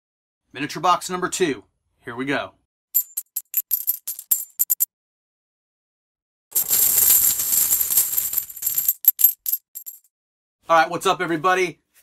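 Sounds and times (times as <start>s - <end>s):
coins clinking: 3.0s - 4.9s, 6.5s - 10.1s
coins pouring and jingling: 3.0s - 4.9s, 6.5s - 10.1s.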